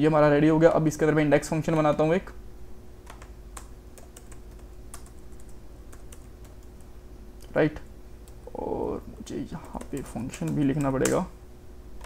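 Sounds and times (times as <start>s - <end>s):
faint steady hum: 0.0s - 12.0s
keyboard key clicks: 9.7s - 11.2s.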